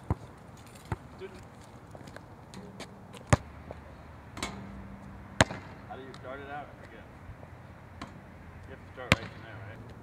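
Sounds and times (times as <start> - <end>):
basketball bouncing: 2.6 - 3.5, 5.4 - 5.8, 9.0 - 9.4.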